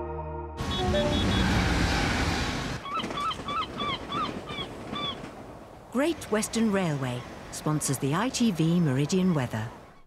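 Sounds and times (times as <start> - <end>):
train rushing past: 0.6 - 8.5.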